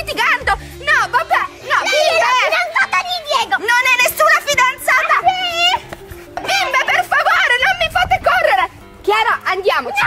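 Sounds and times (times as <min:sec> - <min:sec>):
girls squealing and shouting: 0:00.9 - 0:08.4.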